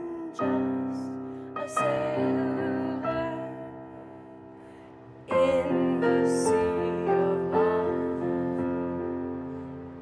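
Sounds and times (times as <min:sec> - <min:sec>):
woman singing: 0:00.0 - 0:04.2, 0:05.3 - 0:09.3
held piano chords: 0:00.0 - 0:10.0
keyboard: 0:00.0 - 0:10.0.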